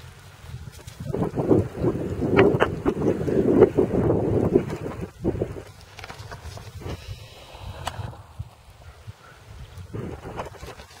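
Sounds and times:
wind buffeting microphone: 0.3s - 11.0s.

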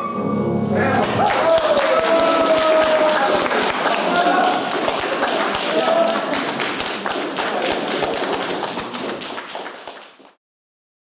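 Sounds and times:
audience applauding: 1.0s - 10.4s.

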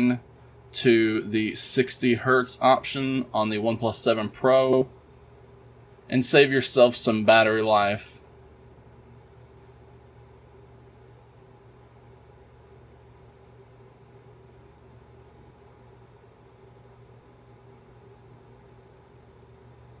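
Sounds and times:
faint low room hum: 0.0s - 20.0s.

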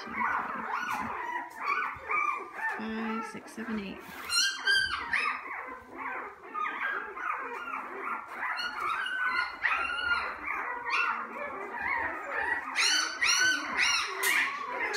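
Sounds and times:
puppies squeaking and whimpering: 0.0s - 14.9s.

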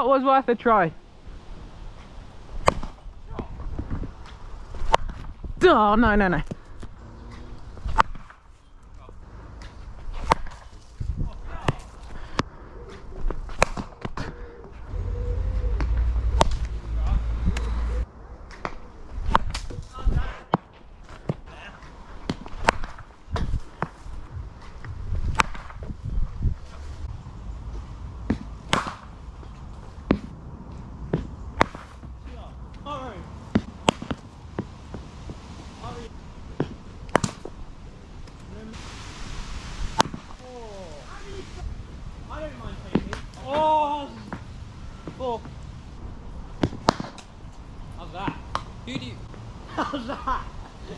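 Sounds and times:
low rumble: 14.7s - 19.3s.

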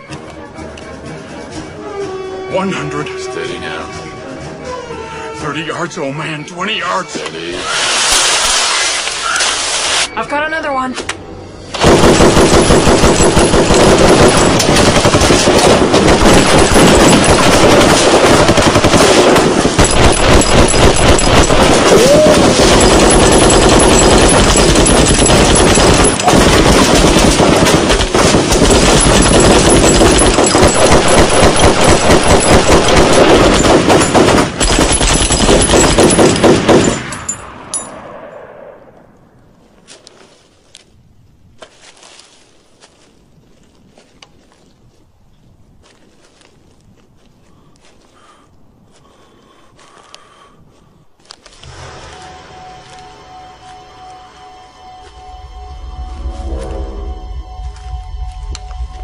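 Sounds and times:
automatic gunfire: 11.8s - 37.2s.

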